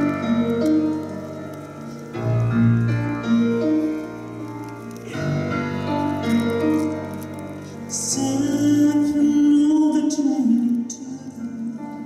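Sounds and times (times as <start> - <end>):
live ensemble playing ballad: 0.0 - 12.0.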